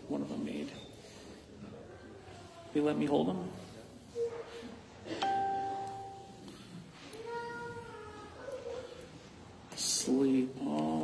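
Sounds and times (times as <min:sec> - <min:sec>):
bell-like ding: 0:05.2 - 0:06.4.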